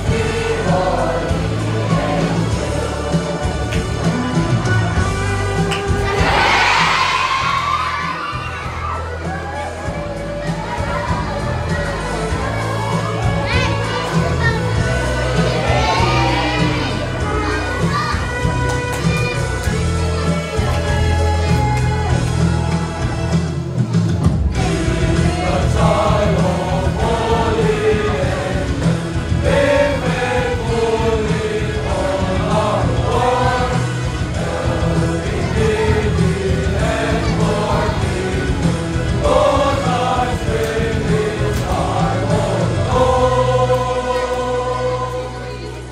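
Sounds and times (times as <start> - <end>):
music with steady bass line: 0.0 - 45.9
children shouting and cheering: 5.6 - 23.6, 30.2 - 40.8.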